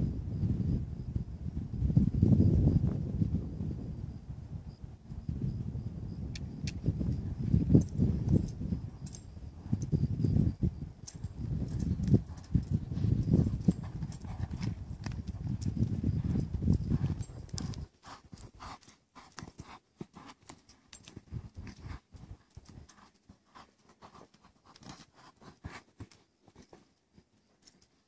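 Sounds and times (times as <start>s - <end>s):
wind buffeting microphone: 0.0s - 18.7s
muffled hoofbeats on sand: 6.7s - 27.3s
light clicks and ticks: 11.0s - 17.8s.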